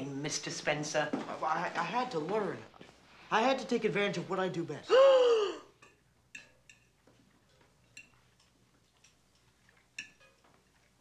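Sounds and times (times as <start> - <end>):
metal fork clinking on plate: 5.8 - 10.5.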